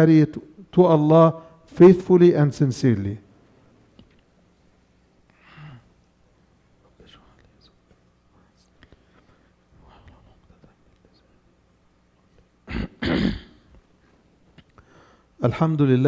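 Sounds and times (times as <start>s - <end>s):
faint whispering: 6.7s - 11.5s
throat clearing into microphone: 12.6s - 13.7s.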